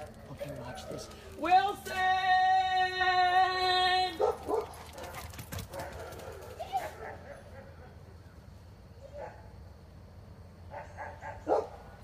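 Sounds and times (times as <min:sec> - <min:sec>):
dog barking: 0:04.2 - 0:08.0, 0:10.7 - 0:12.0.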